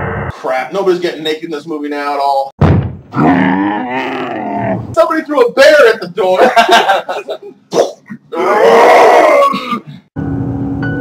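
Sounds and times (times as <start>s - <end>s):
person yelling: 7.8s - 9.6s.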